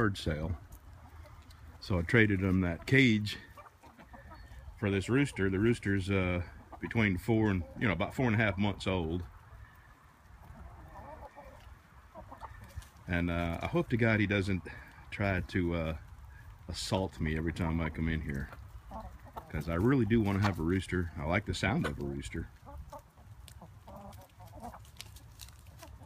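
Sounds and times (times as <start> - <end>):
chickens clucking: 0.0 - 26.0.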